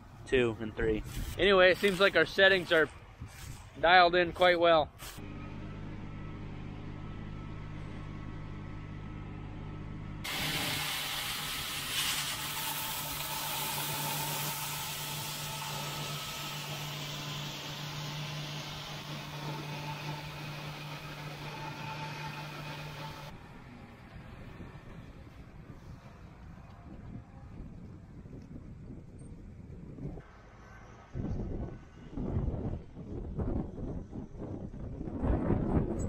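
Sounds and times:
combine engine hum: 5.2s - 27.8s
corn pouring hiss: 10.3s - 21.0s.

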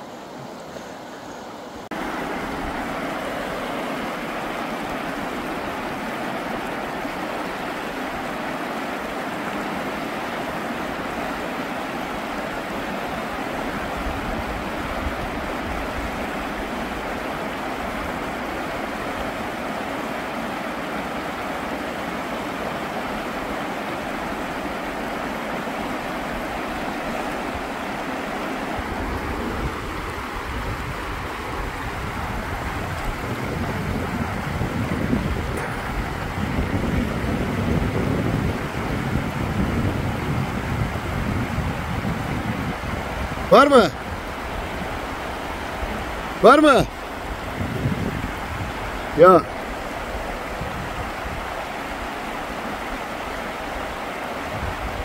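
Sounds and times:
river rushing over rocks: 0.0s - 55.0s.

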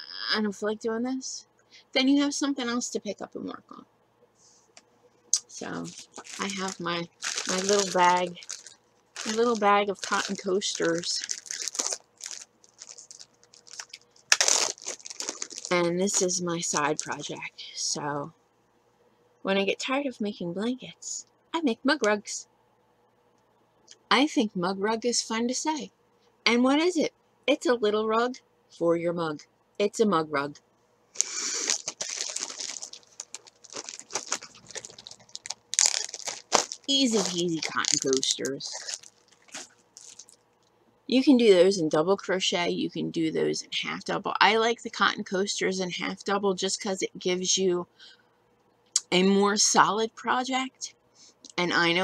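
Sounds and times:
plastic bag crinkling: 5.4s - 17.4s, 31.2s - 40.5s.

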